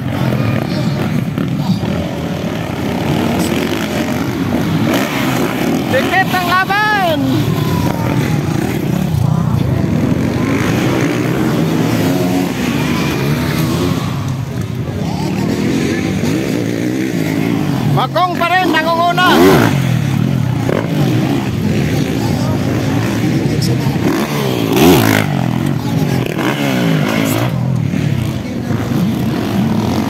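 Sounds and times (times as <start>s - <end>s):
crowd voices: 0.0s - 30.0s
dirt bike engines revving: 0.0s - 30.0s
man calling loudly: 5.9s - 7.4s, 18.0s - 19.7s.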